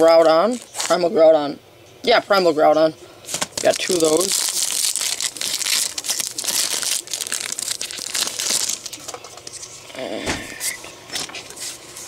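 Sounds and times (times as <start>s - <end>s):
foil wrapper crinkling: 0.0s - 1.2s, 3.2s - 9.8s.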